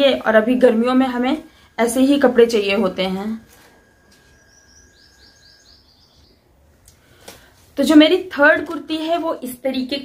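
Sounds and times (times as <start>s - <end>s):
faint bird chirping: 0.6s - 7.2s.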